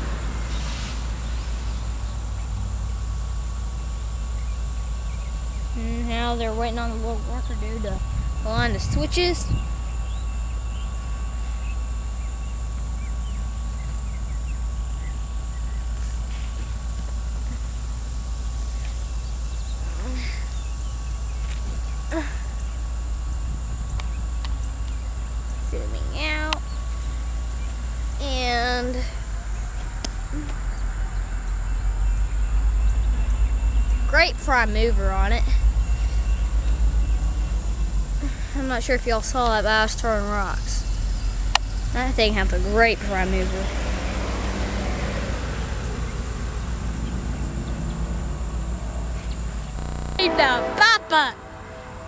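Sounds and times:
diesel locomotive idling: 0.0 - 52.0.

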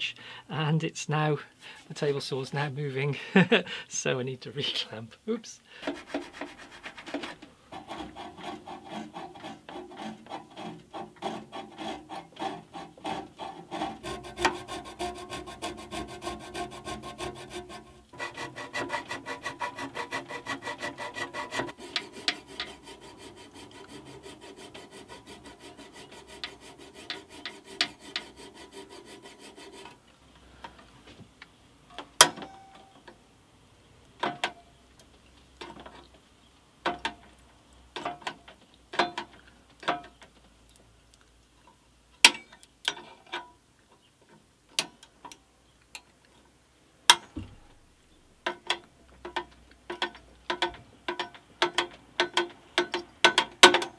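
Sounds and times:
hand file rasping on steel: 5.8 - 30.0.

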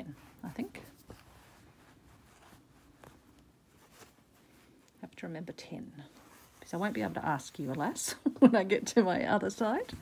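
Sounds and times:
soft ticks and rustles of fabric: 0.0 - 10.0.

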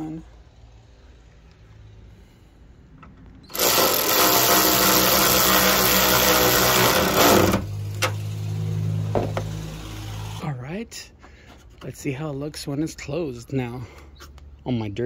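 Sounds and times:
electric ratchet motor whine: 3.5 - 10.4.

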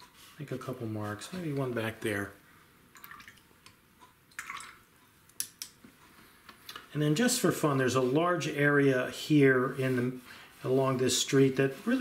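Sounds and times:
paint brush swishing in water: 7.2 - 12.0.

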